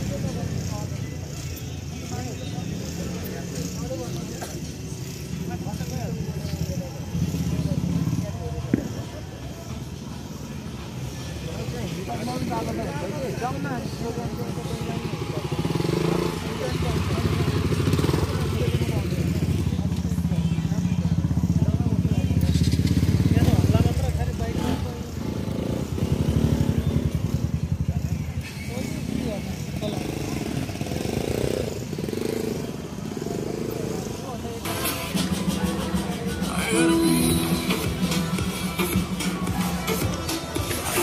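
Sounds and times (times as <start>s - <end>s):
motorcycle engine running: 0.0s - 41.0s
people talking: 0.0s - 41.0s.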